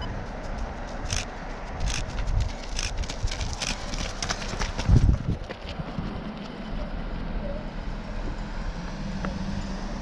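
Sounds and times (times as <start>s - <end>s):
running footsteps on pavement: 0.0s - 6.9s.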